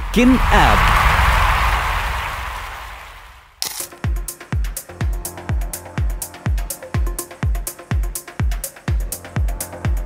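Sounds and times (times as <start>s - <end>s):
rushing whoosh with deep rumble: 0.8s - 3.4s.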